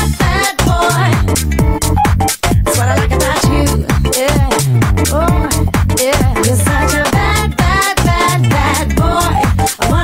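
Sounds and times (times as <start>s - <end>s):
dance music with deep bass: 0.0s - 10.0s.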